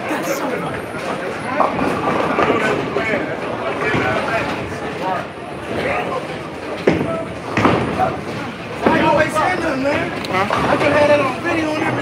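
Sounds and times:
crowd noise: 0.0 - 12.0
people talking: 0.0 - 12.0.

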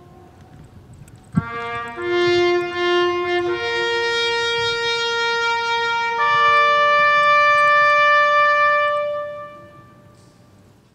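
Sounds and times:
bugle holding long note: 0.0 - 0.6, 1.4 - 10.5.

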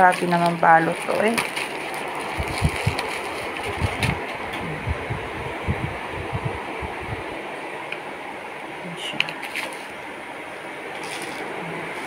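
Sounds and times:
plastic wrapping crinkling: 0.0 - 4.4, 9.4 - 10.0, 10.9 - 12.0
soft low bumps: 3.6 - 7.2.

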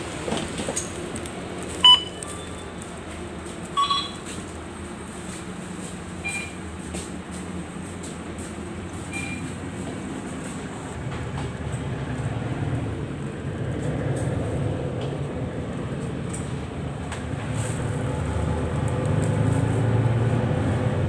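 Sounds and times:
bus engine rumble from inside: 0.0 - 21.0
short high beeps: 1.8 - 2.6, 3.8 - 4.3, 6.2 - 6.6, 9.1 - 9.5.

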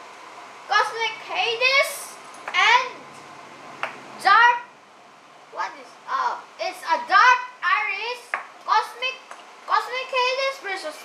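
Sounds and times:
child talking: 0.7 - 3.1, 4.2 - 4.7, 5.6 - 11.0.

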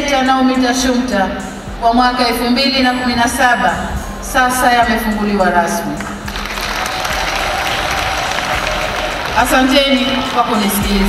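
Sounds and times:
stadium crowd applauding: 6.2 - 11.0.

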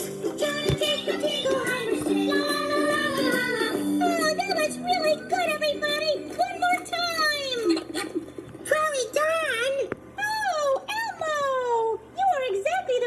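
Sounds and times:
high-pitched cartoon voices: 0.4 - 7.9.

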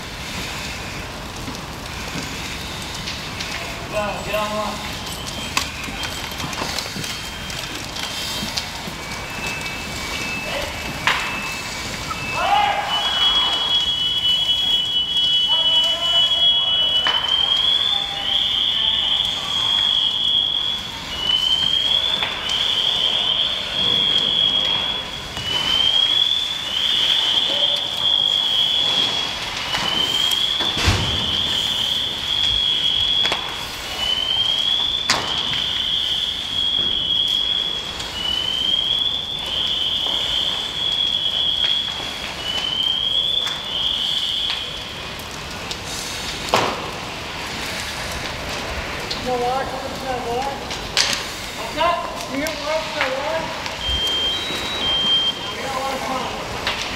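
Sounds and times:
vehicle fire burning: 0.0 - 56.9
electronic alarm warbling: 2.0 - 45.0, 51.5 - 56.5.

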